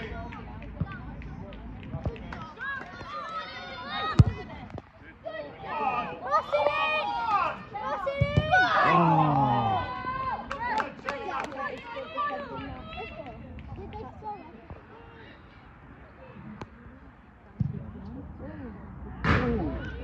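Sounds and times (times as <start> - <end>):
players shouting: 5.3 - 13.2.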